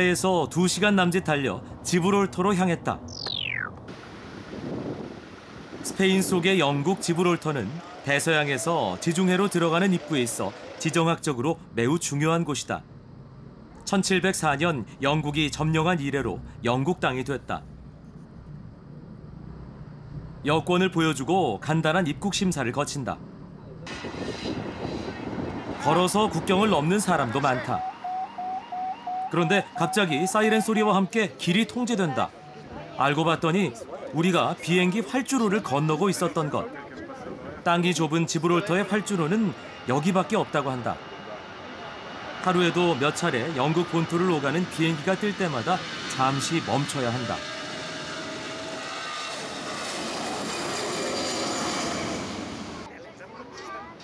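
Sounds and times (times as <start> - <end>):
rushing street noise: 0.0 - 54.0
jet engines at take-off: 2.6 - 16.6, 23.0 - 52.9
faint crowd chatter: 29.3 - 44.1, 52.9 - 54.0.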